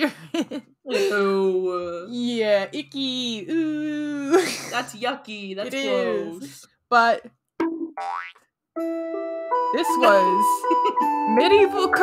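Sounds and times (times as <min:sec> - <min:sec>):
cartoon boing rising in pitch: 0:07.6 - 0:08.4
music jingle of held notes: 0:08.8 - 0:12.0.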